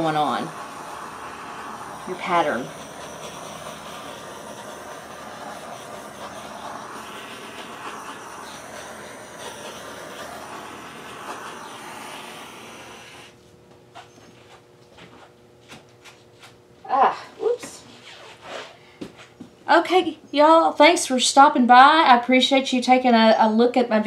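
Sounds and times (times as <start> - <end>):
torch flame hissing: 0.0 - 13.4.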